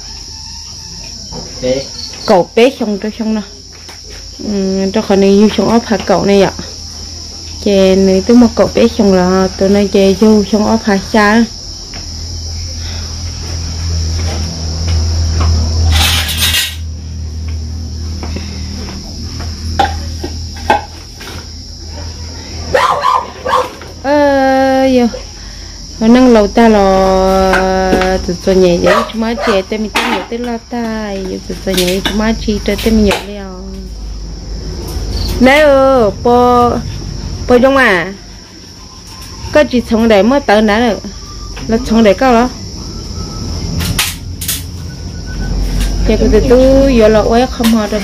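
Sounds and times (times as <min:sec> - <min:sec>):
night insects chirring: 0:00.0 - 0:48.0
dog barking: 0:22.7 - 0:23.8, 0:28.8 - 0:29.7.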